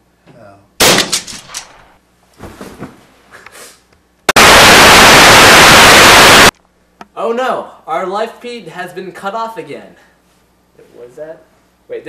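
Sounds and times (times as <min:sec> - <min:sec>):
loud crack: 0:00.8 - 0:02.0, 0:04.3 - 0:06.5
rough noisy bursts: 0:04.3 - 0:06.5
tv static hiss: 0:04.3 - 0:06.5.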